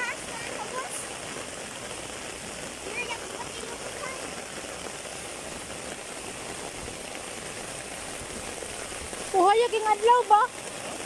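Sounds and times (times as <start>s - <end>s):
heavy rain on foliage: 0.0s - 11.0s.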